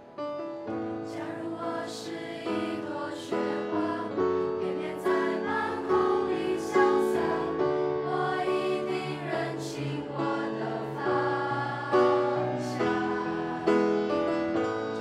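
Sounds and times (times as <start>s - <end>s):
piano accompaniment: 0.0s - 15.0s
children's choir singing in harmony: 0.8s - 15.0s.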